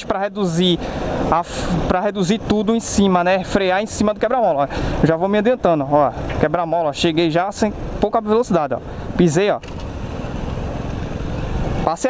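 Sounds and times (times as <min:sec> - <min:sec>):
road noise: 0:00.0 - 0:12.0.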